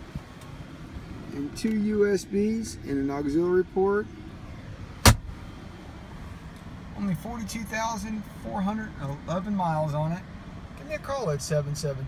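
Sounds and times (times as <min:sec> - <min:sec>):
sharp knock: 0:05.0 - 0:05.3.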